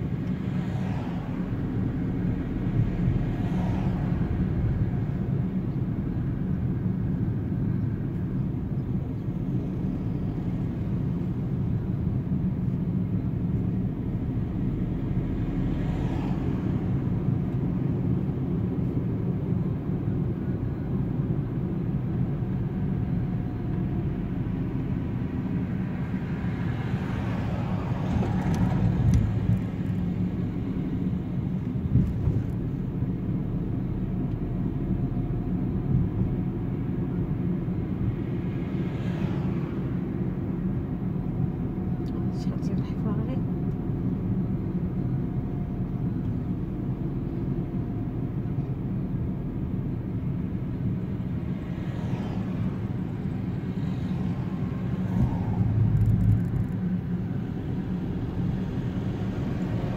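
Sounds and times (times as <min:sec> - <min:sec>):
car engine and road noise: 0:00.0 - 0:59.9
passing vehicles: 0:00.0 - 0:59.9.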